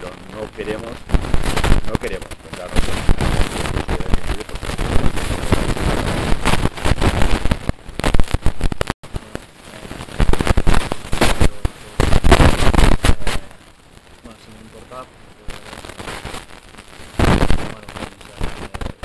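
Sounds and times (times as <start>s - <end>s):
crackling and rustling noise: 0.0s - 19.0s.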